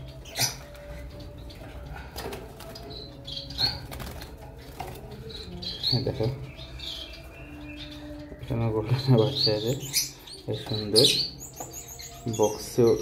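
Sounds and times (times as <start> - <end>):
high bird chirps: 5.2 - 13.0.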